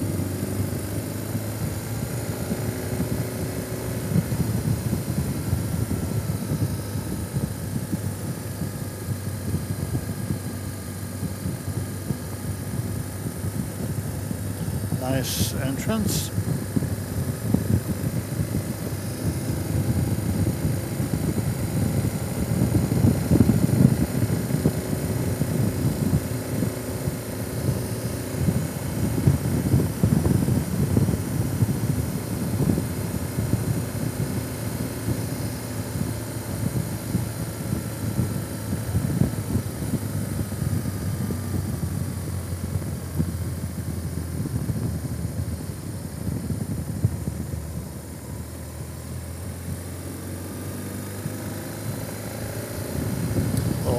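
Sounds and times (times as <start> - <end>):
motorcycle engine running: 0.0 - 15.0, 16.4 - 53.9.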